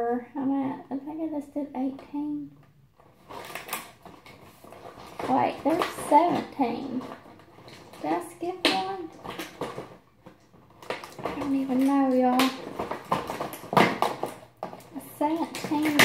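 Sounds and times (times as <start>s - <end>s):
woman speaking: 0.0s - 2.5s, 5.2s - 7.2s, 8.0s - 9.2s, 11.3s - 12.6s, 14.9s - 16.0s.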